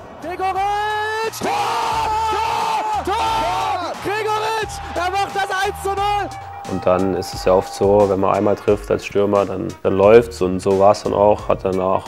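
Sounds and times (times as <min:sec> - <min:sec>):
commentator yelling: 0:00.2 - 0:09.0
background music with bass line: 0:01.4 - 0:11.8.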